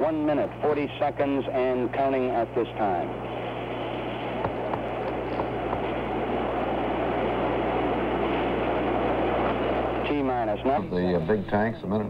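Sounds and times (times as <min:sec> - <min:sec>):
low hum: 0:00.0 - 0:11.6.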